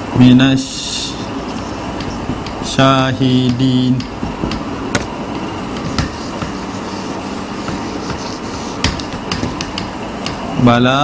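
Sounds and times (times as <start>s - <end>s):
room noise: 0.0s - 11.0s
marker tip tapping whiteboard: 3.4s - 5.1s, 5.8s - 6.6s, 7.6s - 10.4s.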